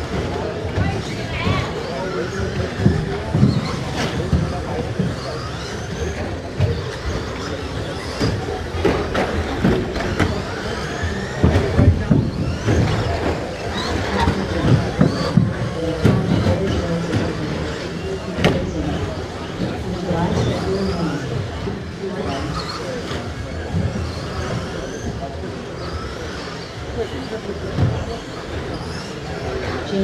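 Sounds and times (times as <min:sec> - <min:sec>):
indistinct voices: 0:00.0 - 0:30.0.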